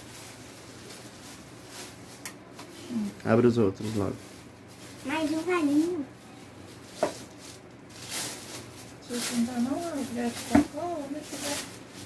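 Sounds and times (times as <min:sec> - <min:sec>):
plastic wrapping rustling: 0:00.0 - 0:12.0.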